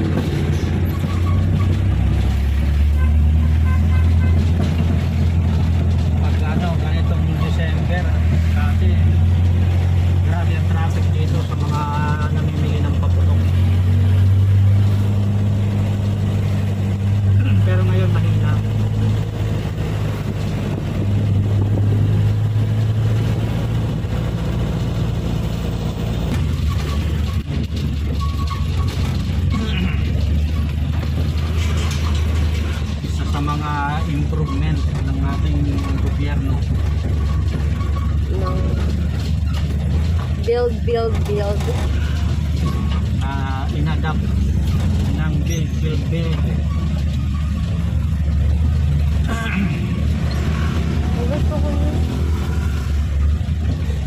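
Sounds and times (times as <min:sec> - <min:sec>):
truck engine drone from inside cab: 0:00.0 - 0:54.0.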